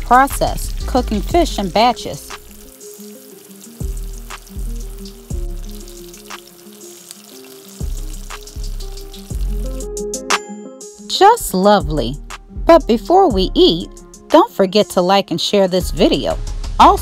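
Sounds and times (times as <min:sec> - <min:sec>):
fish frying in oil: 0:00.0 - 0:09.9
background music: 0:00.0 - 0:17.0.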